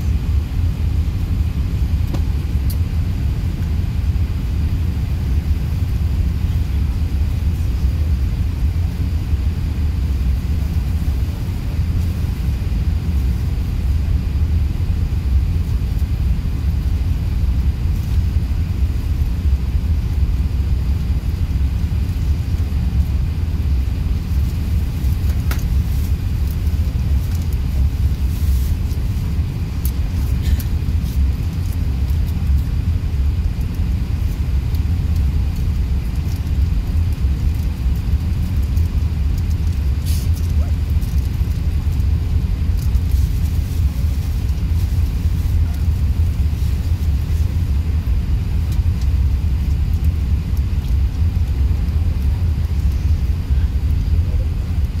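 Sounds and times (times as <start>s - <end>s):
airliner cabin rumble: 0.0s - 55.0s.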